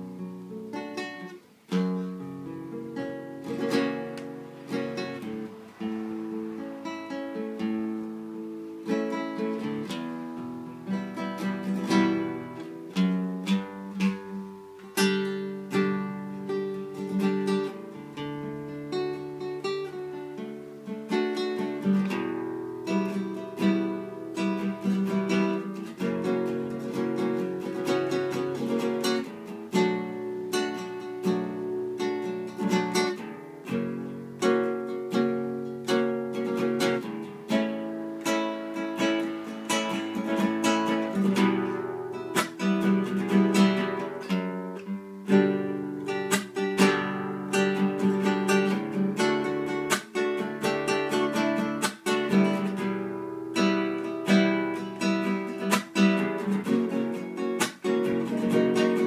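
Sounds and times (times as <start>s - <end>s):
classical guitar playing: 0.0s - 59.0s.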